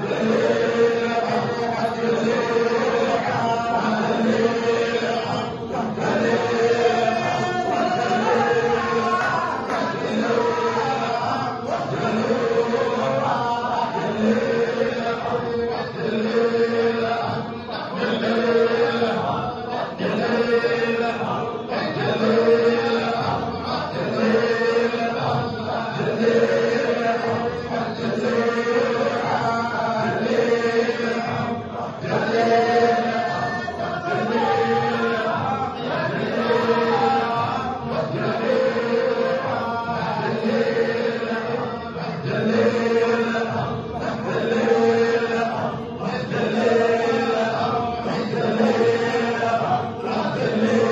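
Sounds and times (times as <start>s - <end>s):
men chanting together: 0.0s - 50.9s.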